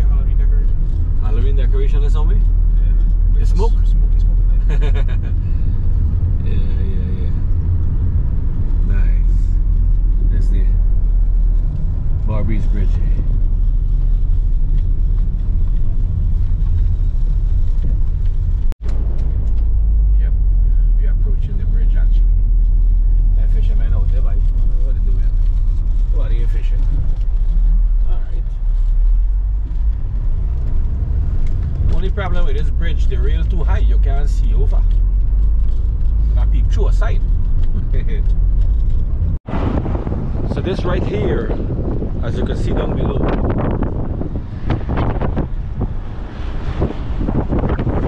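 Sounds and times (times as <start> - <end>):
car road and engine rumble: 0.0 - 48.0.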